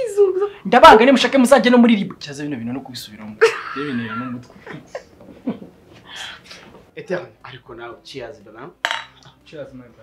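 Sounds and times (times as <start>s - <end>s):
glass bottle clinking: 8.8s - 9.4s.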